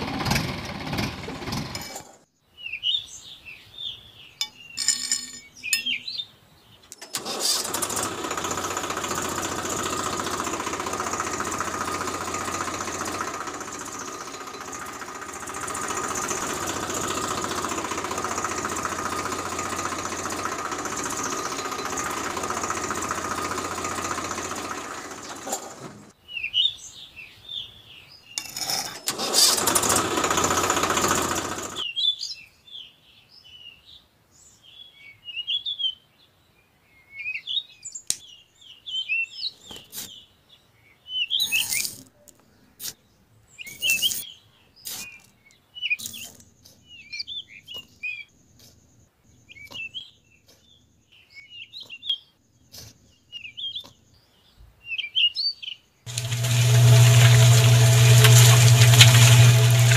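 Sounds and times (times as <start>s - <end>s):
birds chirping: 2.4s - 7.1s, 11.2s - 25.5s
toy tractor motor whirring: 7.0s - 26.1s, 28.4s - 31.8s, 56.1s - 59.9s.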